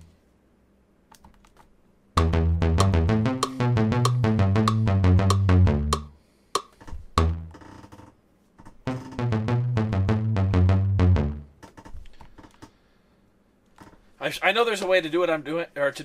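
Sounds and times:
synth bass note: 0:02.2 - 0:06.1, 0:07.2 - 0:07.6, 0:08.9 - 0:11.5
rapid drum ticks: 0:02.2 - 0:07.5.

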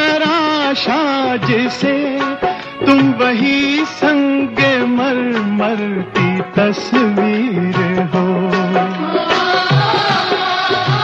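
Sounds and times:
old film song music: 0:00.0 - 0:11.0.

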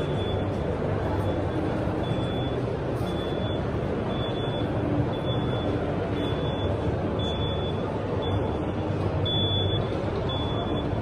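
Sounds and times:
high electronic beep: 0:00.0 - 0:00.6, 0:02.0 - 0:11.0
busy indoor hall din: 0:00.0 - 0:11.0.

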